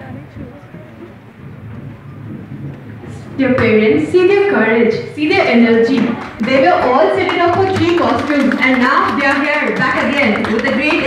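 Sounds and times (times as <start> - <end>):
crowd noise in large hall: 0.0 - 11.0
steady low hum: 0.0 - 11.0.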